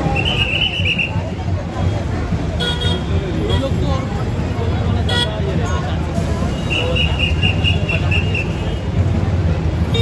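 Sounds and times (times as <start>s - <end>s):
crowd voices: 0.0s - 10.0s
low rumble of traffic: 0.0s - 10.0s.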